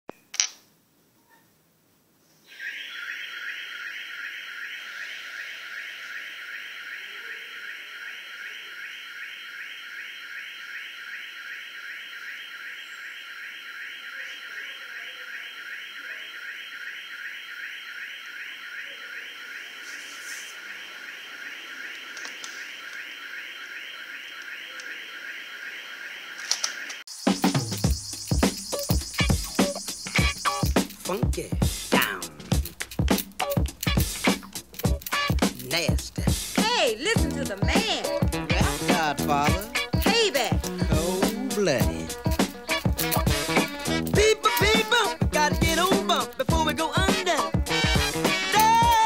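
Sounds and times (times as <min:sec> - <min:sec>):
electronic alarm pulsing tone: 0:02.5 - 0:32.7, 0:33.4 - 0:49.0
click: 0:22.2 - 0:23.0, 0:26.4 - 0:27.0.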